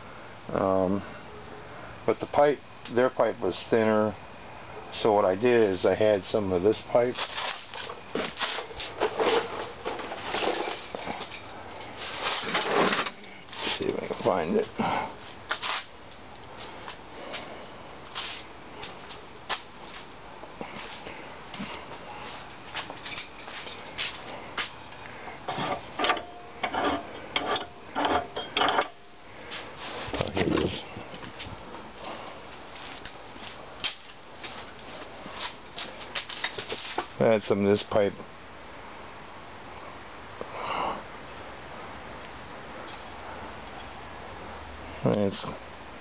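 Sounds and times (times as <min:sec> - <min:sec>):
tools and metal pipe clattering: 0:07.2 - 0:11.5, 0:23.0 - 0:24.0, 0:25.5 - 0:29.2.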